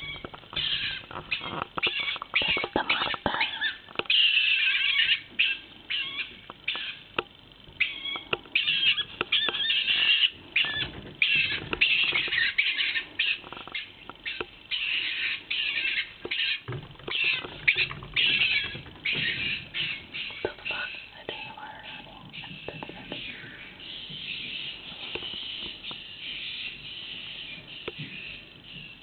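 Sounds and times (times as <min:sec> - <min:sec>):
marten screechy calls: 0:00.0 - 0:07.2, 0:07.8 - 0:29.0.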